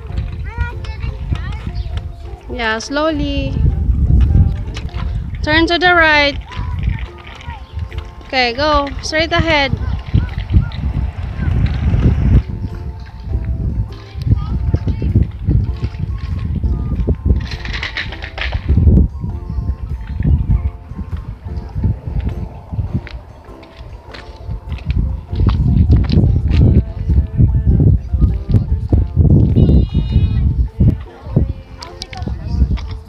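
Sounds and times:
music with held notes: 0.0 - 33.0
loud low rumble: 8.9 - 13.8, 20.2 - 26.9.

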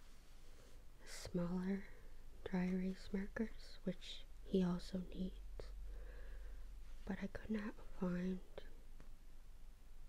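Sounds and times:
low steady hum: 0.0 - 10.0
woman whispering: 1.0 - 5.8, 7.0 - 8.8.

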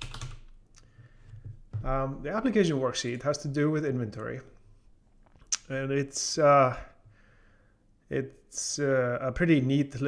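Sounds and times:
computer keyboard typing: 0.0 - 0.5.

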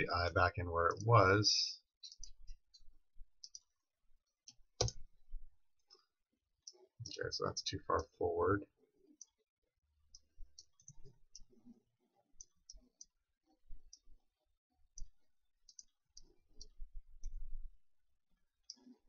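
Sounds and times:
computer mouse clicking: 3.4 - 3.8, 14.9 - 17.4.

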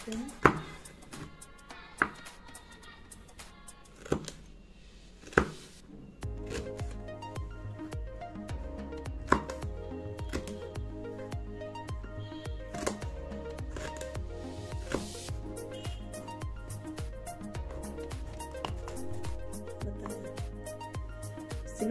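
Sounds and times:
background music with steady beat: 0.0 - 4.5, 5.3 - 21.9
knife slicing on chopping board: 5.2 - 5.8.

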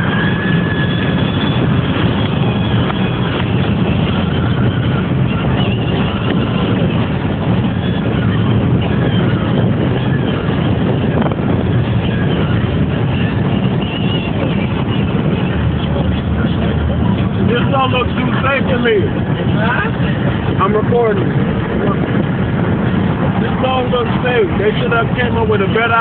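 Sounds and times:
car road noise at speed: 0.0 - 26.0.

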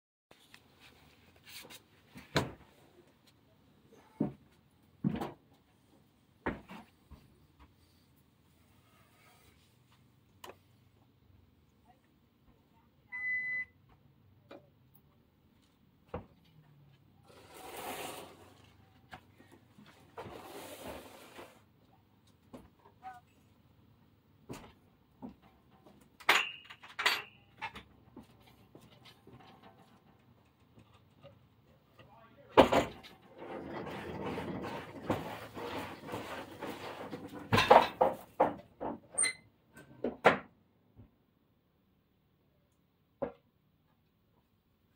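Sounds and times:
ramp creaking and rattling: 32.6 - 39.4.

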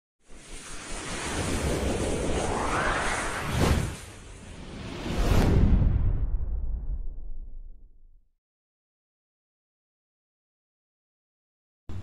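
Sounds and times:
whoosh with deep rumble: 0.2 - 8.3.

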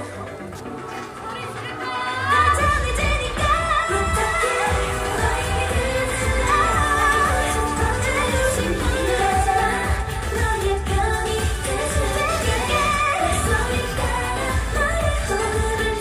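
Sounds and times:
female group singing pop song: 0.0 - 16.0
heavy bass: 2.5 - 16.0.

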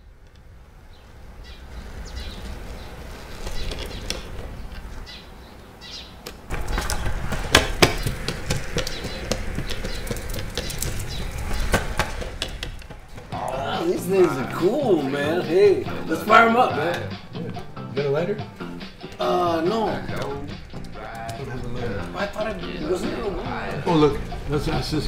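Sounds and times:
longboard wheels rolling on concrete: 0.0 - 25.0.

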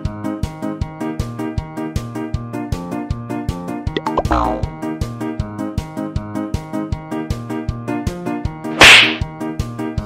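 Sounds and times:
upbeat background music: 3.9 - 4.9
loud hand slap on head: 8.8 - 9.3.

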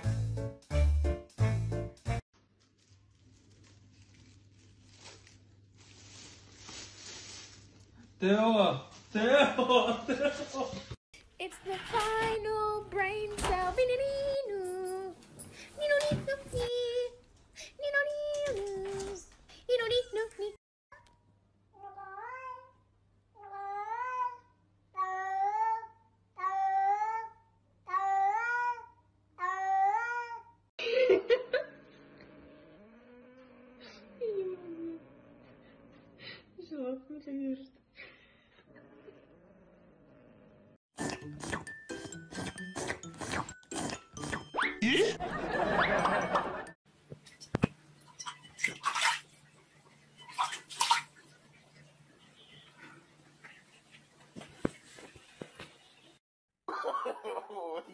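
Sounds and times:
cat paw splashing water: 48.2 - 49.4, 50.2 - 51.3.

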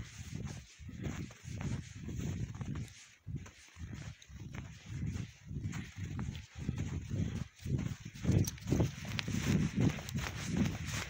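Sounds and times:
footsteps on snow: 0.0 - 11.0.

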